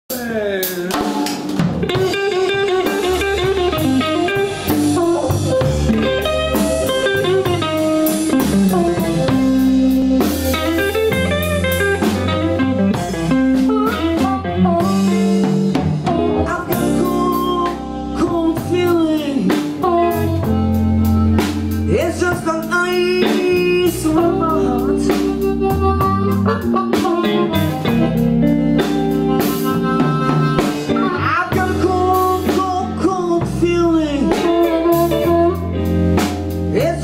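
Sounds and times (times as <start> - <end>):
bass guitar: 0.1 - 37.0
drum kit: 0.1 - 37.0
electric guitar: 0.1 - 37.0.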